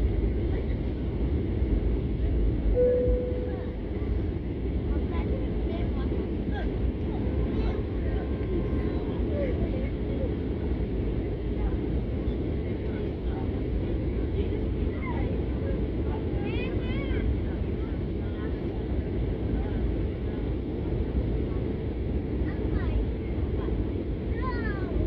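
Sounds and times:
airliner cabin engine noise: 0.0 - 25.0
faint passenger voices: 0.0 - 25.0.

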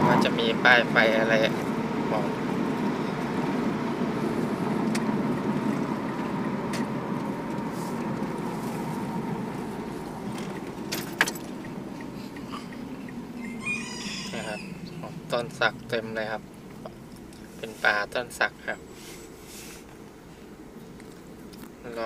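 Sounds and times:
motor vehicle rumbling: 0.0 - 22.0
rooster crowing: 13.3 - 15.1.

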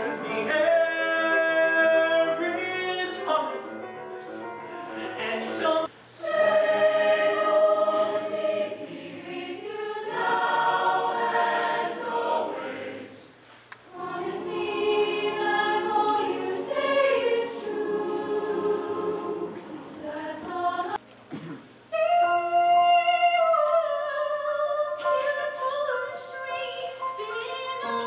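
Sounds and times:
choir singing: 4.8 - 21.0.

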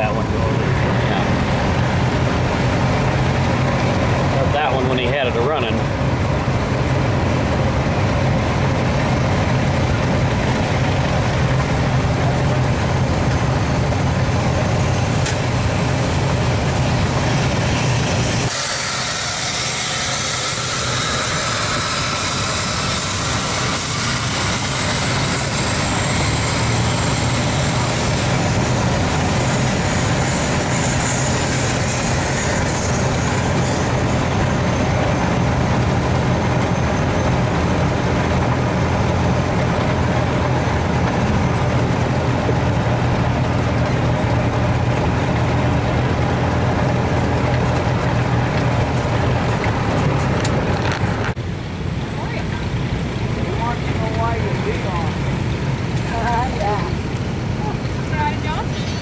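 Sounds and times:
engine humming: 0.0 - 59.0
loud hiss: 14.2 - 34.2.

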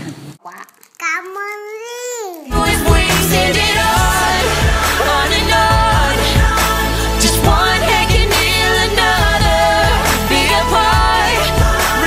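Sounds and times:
toddler speaking sing-song: 0.4 - 2.6.

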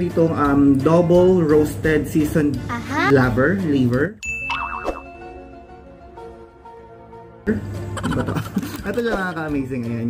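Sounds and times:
bright ding: 4.2 - 5.7
short warbling tone: 4.5 - 5.3.

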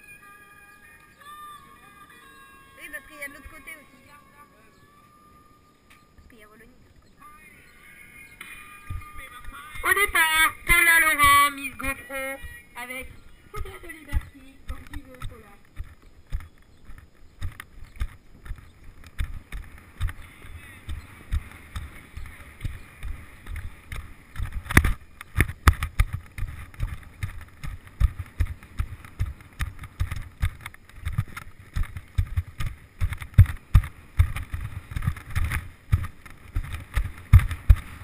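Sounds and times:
horse stride thuds: 13.6 - 38.0.

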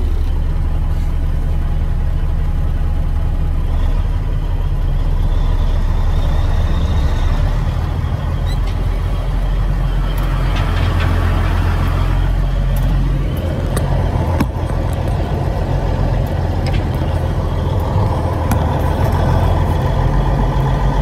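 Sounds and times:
diesel truck engine drone: 0.0 - 21.0.

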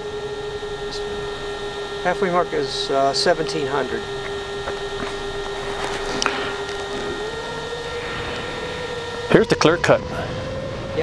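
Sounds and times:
mechanical hum: 0.0 - 11.0
hiss: 7.8 - 9.3.

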